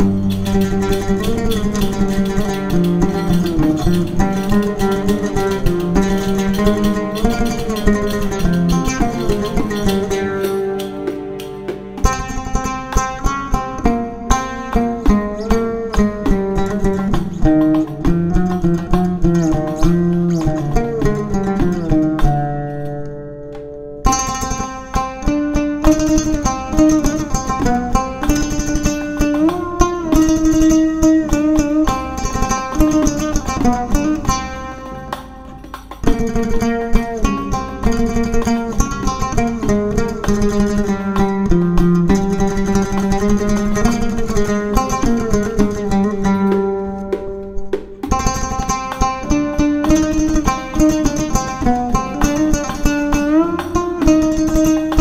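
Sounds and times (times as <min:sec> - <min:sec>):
oud melody: 0:00.0 - 0:55.0.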